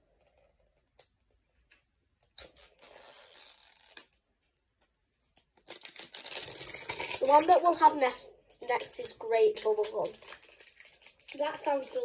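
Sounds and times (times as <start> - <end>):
packaging rustling: 5.6 - 12.0.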